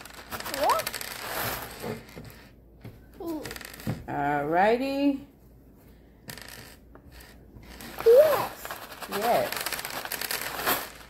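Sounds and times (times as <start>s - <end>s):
plastic bag crinkling: 8.0s - 11.0s.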